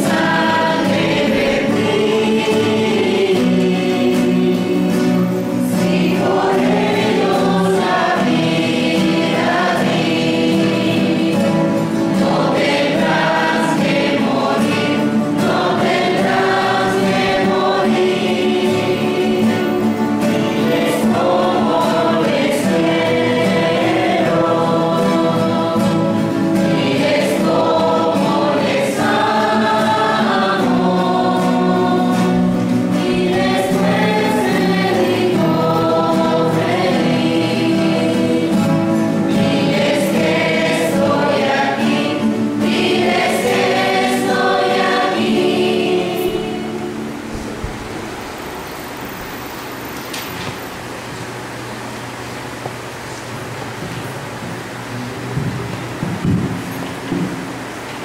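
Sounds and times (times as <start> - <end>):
group singing a hymn: 0.0 - 49.1.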